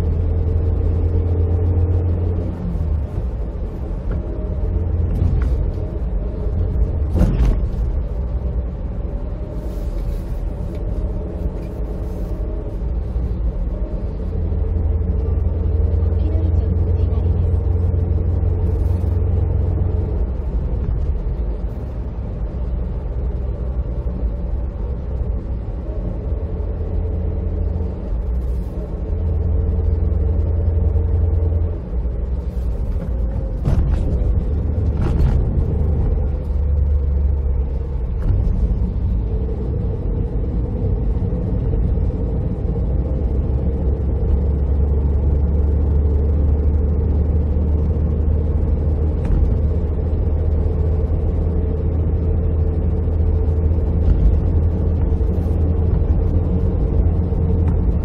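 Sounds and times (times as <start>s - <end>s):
engine drone: 0.0s - 58.0s
road and tyre rumble: 0.0s - 58.0s.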